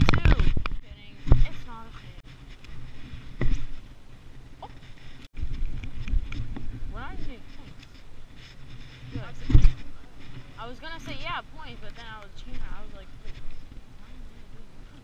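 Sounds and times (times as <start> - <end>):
muffled handling bumps and rumble: 0.0 - 15.0.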